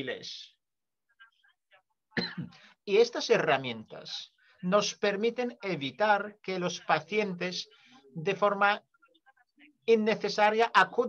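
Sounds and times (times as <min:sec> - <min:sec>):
person clearing throat: 0:02.2 - 0:02.6.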